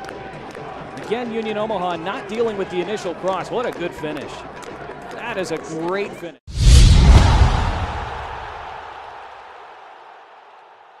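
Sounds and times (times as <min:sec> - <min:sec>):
deep boom: 0:06.5 - 0:08.8.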